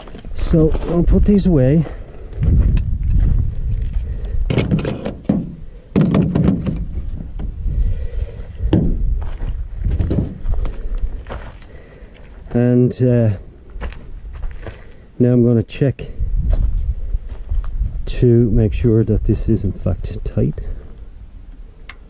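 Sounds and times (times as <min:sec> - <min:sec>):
footsteps on gravel: 0:00.0 - 0:04.2, 0:08.2 - 0:12.6, 0:13.3 - 0:15.0, 0:16.4 - 0:18.0
steady low rumble: 0:00.0 - 0:05.9, 0:06.7 - 0:15.2, 0:16.1 - 0:22.0.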